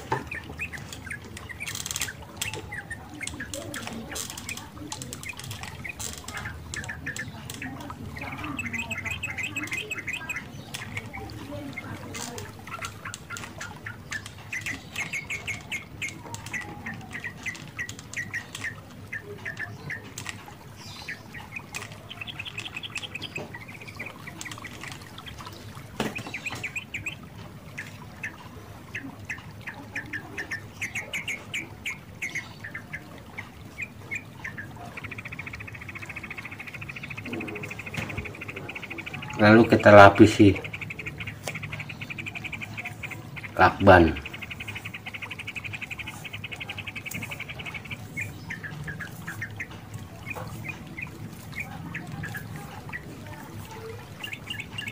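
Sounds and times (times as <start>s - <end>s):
small birds chirping: 0.0s - 54.9s.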